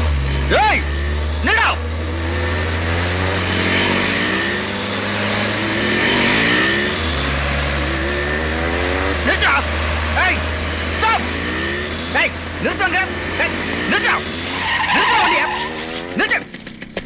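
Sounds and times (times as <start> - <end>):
car engine revving up: 0.0 - 16.8.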